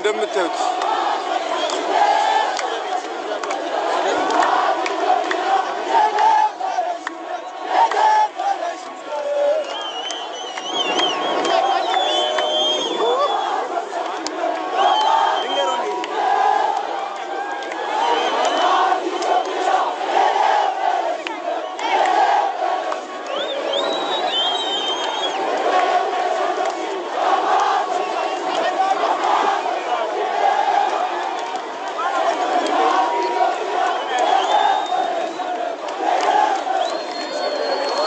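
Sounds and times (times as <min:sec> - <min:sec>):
crowd shouting and cheering: 0:00.0 - 0:38.0.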